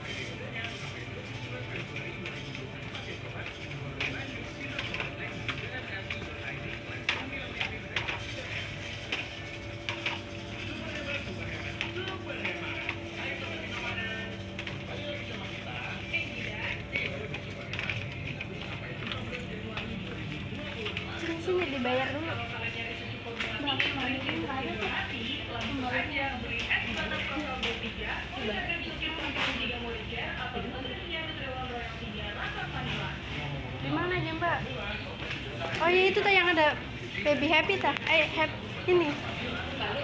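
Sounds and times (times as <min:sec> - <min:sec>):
faint background music: 0:00.0 - 0:40.0
steady hum: 0:00.0 - 0:40.0.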